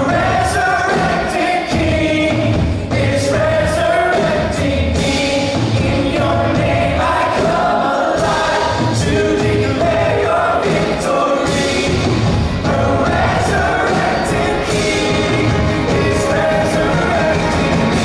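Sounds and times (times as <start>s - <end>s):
choir singing worship song: 0.0s - 18.0s
live band playing: 0.0s - 18.0s.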